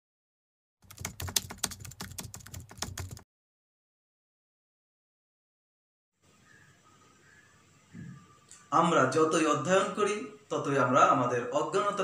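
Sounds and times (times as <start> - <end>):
keyboard typing clatter: 0.8 - 3.2.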